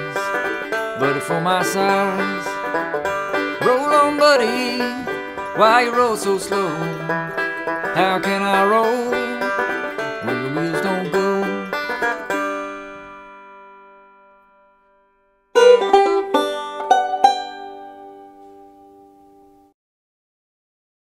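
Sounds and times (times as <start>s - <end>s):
plucked banjo phrase: 0.0s - 13.5s, 15.6s - 19.5s
banjo chord ringing: 0.0s - 14.7s, 15.6s - 19.7s.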